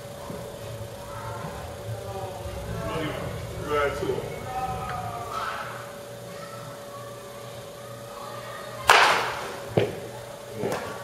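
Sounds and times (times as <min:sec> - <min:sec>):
bat cracking against baseball: 0:08.8 - 0:10.0.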